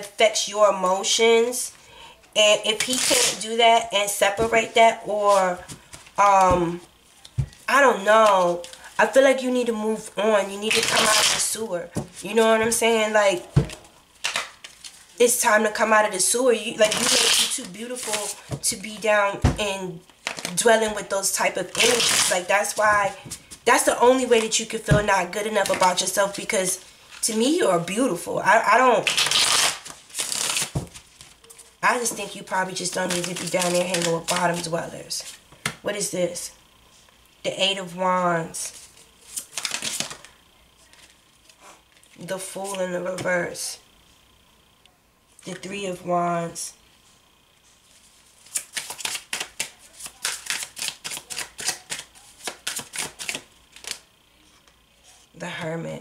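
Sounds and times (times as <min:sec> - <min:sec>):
cards being shuffled: 0:10.6 - 0:12.8, 0:13.6 - 0:15.1, 0:16.8 - 0:20.6, 0:21.7 - 0:23.6, 0:25.6 - 0:26.1, 0:29.0 - 0:31.4, 0:32.8 - 0:35.8, 0:38.7 - 0:42.8, 0:48.4 - 0:54.0
cards riffle-shuffled: 0:10.7 - 0:12.2, 0:21.7 - 0:22.8, 0:29.0 - 0:31.3, 0:38.7 - 0:40.3, 0:48.4 - 0:54.0.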